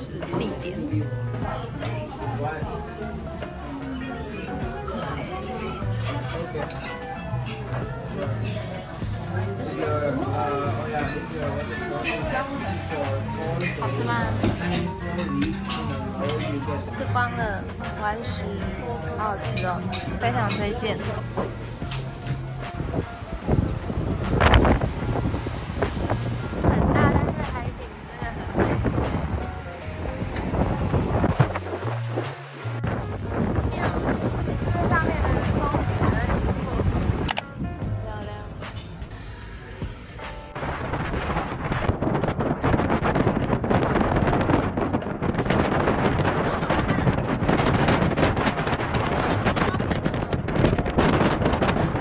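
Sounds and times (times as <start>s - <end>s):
background music with bass notes: 0.0s - 52.0s
wind gusting on microphone: 22.5s - 38.5s, 40.5s - 52.0s.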